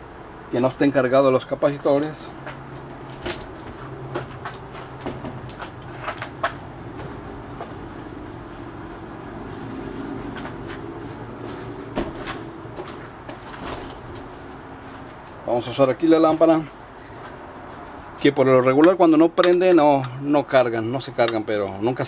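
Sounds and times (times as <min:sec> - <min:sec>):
low steady hum: 0:00.0 - 0:22.0
clicks and knocks of objects handled: 0:01.8 - 0:07.3.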